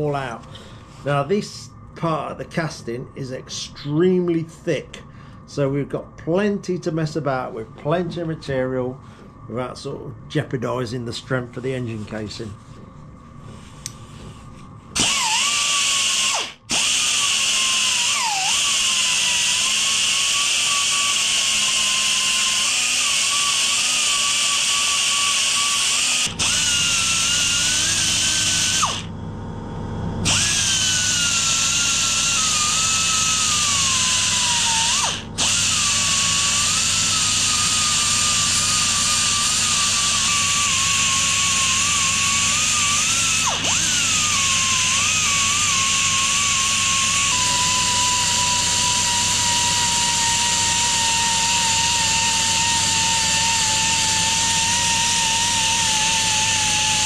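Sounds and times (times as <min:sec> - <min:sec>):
belt sander grinding metal: 0:15.0 - 0:29.1, 0:30.2 - 0:57.0.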